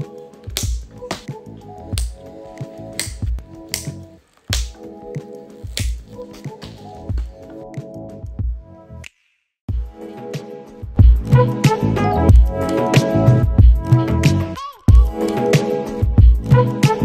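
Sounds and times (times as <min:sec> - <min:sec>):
kick drum thumps: 0:00.5 - 0:01.3, 0:03.1 - 0:03.5, 0:07.0 - 0:07.4
sharp claps: 0:00.5 - 0:01.3, 0:03.0 - 0:04.9.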